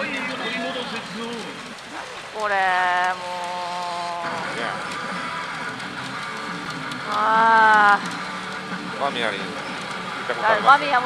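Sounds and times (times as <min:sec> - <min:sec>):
pachinko parlour din: 0:01.9 - 0:05.8, 0:07.1 - 0:08.4, 0:10.2 - 0:11.0.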